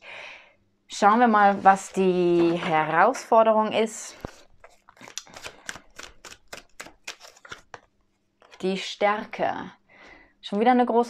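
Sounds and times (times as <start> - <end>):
cards being shuffled: 4.1 - 8.6.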